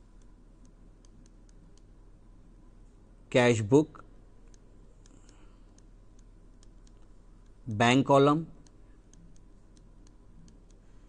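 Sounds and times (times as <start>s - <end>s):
stylus ticking on tablet: 0.0s - 2.0s, 4.4s - 7.6s, 8.5s - 10.9s
low steady hum: 0.0s - 11.0s.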